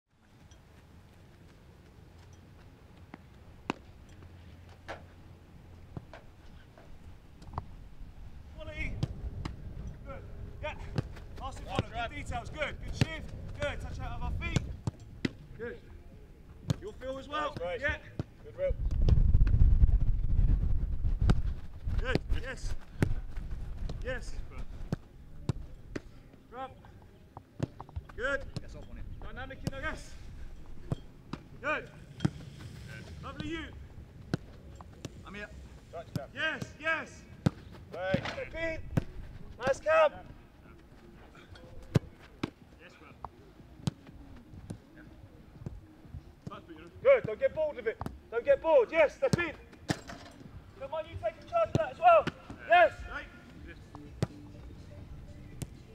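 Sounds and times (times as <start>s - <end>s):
wind rumble on microphone: 18.7s - 24.0s
football being kicked: 21.0s - 24.1s, 37.4s - 39.2s, 54.2s - 54.5s.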